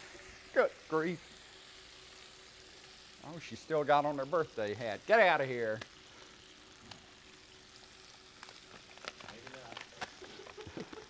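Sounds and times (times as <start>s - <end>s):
food sizzling in pans: 0.0s - 11.0s
small ticks: 5.7s - 7.0s, 7.7s - 11.0s.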